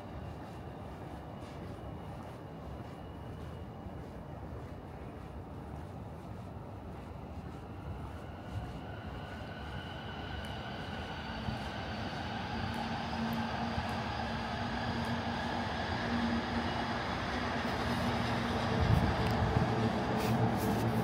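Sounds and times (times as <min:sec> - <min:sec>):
electric train rolling and humming: 0:00.0 - 0:21.0.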